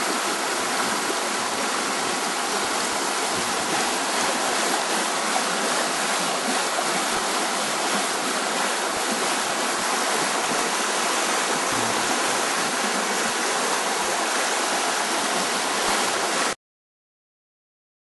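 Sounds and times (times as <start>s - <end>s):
river water rushing: 0.0s - 16.6s.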